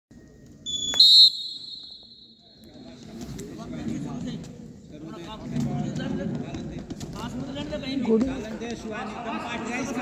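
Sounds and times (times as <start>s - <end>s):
referee's whistle: 0.7s - 2.4s.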